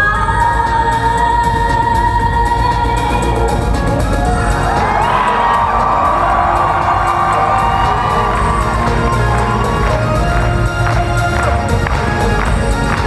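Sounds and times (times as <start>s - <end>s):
live concert music: 0.0s - 13.0s
audience cheering: 4.2s - 13.0s.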